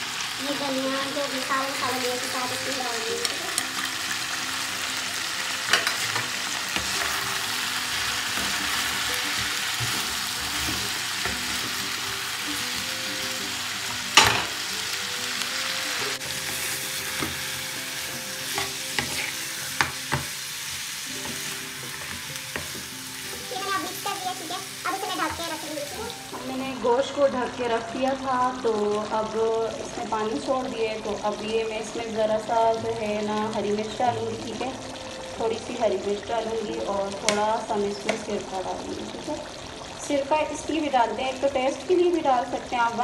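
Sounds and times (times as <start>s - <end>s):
food sizzling in a pan: 0.0s - 43.0s
spoon stirring and scraping: 18.4s - 22.9s.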